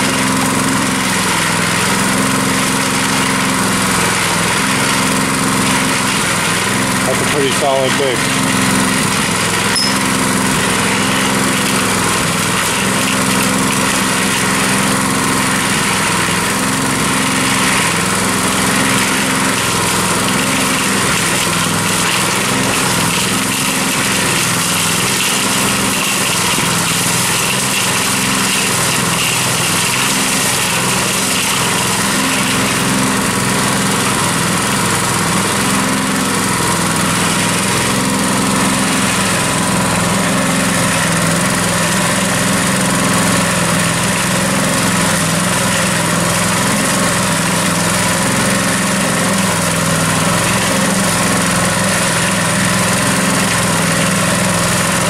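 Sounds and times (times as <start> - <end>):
cement mixer engine running: 0.0 - 55.0.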